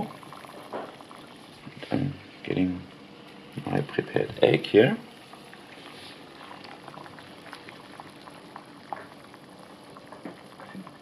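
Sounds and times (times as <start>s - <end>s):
water boiling in a saucepan: 0.0s - 11.0s.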